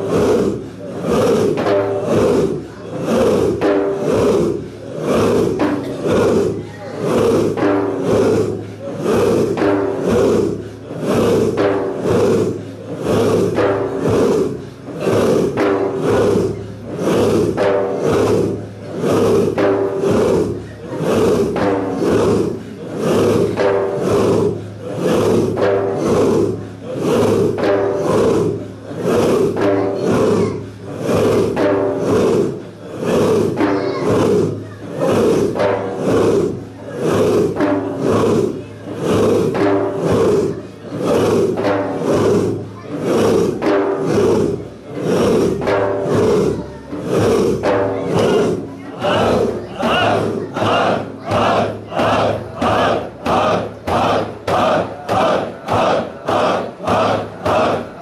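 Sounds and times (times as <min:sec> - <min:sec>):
men chanting together: 0:00.0 - 0:58.0.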